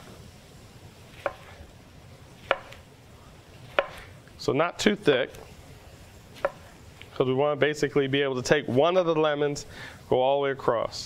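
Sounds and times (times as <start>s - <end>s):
faint steady hiss: 0.0s - 11.0s
knife knocking on wooden board: 2.5s - 2.8s, 3.8s - 4.0s, 6.4s - 6.7s.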